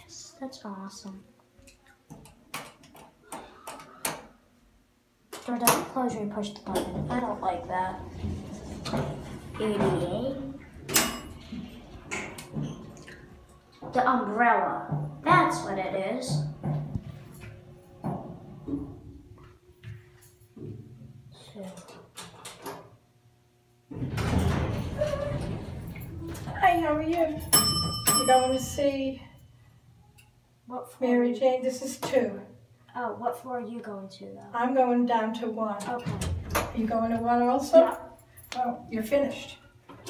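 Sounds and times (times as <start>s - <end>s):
elevator hum: 6.1s - 20.5s
elevator door sliding shut: 7.1s - 13.0s, 23.9s - 26.6s
knocks and rattles: 23.9s - 28.2s.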